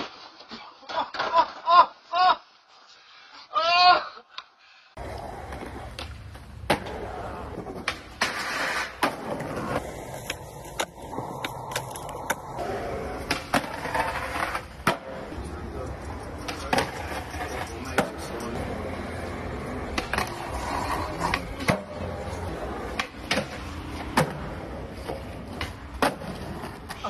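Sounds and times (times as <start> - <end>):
skateboard scraping on ledge: 5.0 - 15.4, 16.0 - 27.0
skateboard clacks: 5.0 - 27.0
skateboards rolling on concrete: 5.0 - 27.0.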